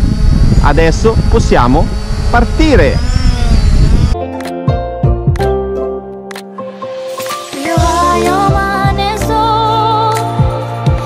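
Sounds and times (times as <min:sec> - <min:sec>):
drone propellers whining: 0:00.0 - 0:04.6
background music with sharp beats: 0:04.5 - 0:09.3.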